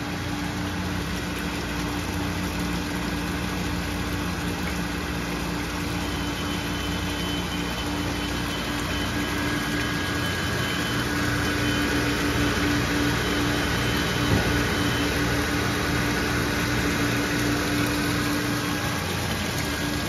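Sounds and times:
electric pump humming: 0:00.0 - 0:20.0
water pouring into tank: 0:00.0 - 0:20.0.

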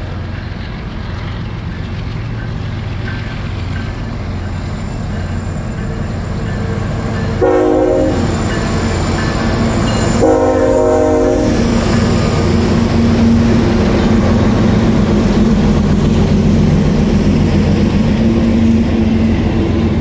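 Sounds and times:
train rumbling on rails: 0:00.0 - 0:20.0
locomotive horn blast: 0:07.4 - 0:08.5, 0:10.1 - 0:11.7.

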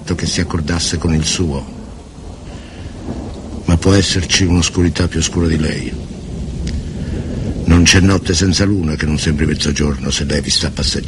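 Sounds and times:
person speaking: 0:00.0 - 0:01.8, 0:03.7 - 0:06.0, 0:07.6 - 0:11.0
low rumbling with hiss: 0:00.0 - 0:11.0.

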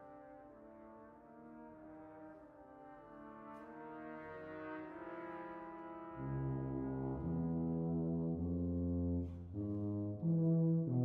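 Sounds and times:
french horns playing held chords: 0:00.0 - 0:11.0.

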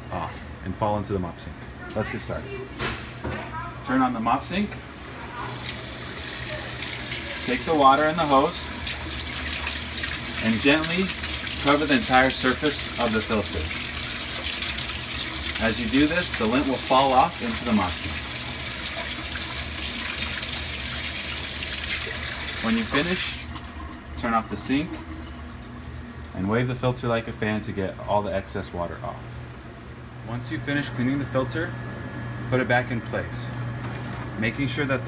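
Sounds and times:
water running from hose into sink: 0:04.8 - 0:26.1.

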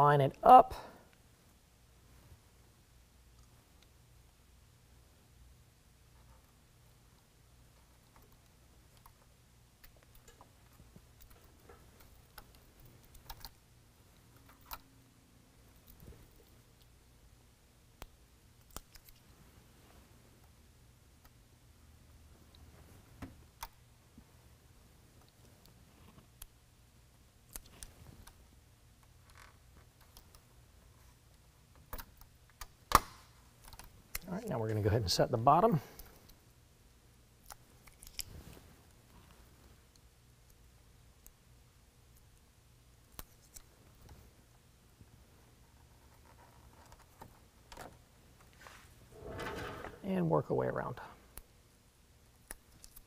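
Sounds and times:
low room hum: 0:00.0 - 0:53.0.

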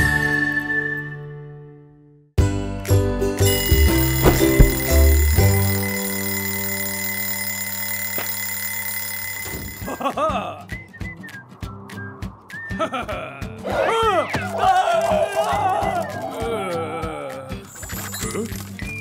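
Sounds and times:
cartoon alarm clock ringing: 0:03.5 - 0:10.1
low thumps: 0:03.7 - 0:05.6.

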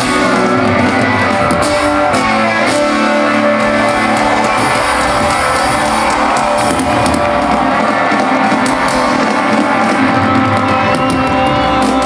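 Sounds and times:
rock band playing loudly: 0:00.0 - 0:12.0.

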